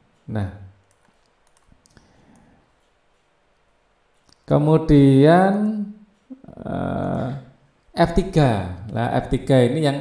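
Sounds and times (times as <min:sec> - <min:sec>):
computer mouse clicks: 0:00.8 - 0:04.5.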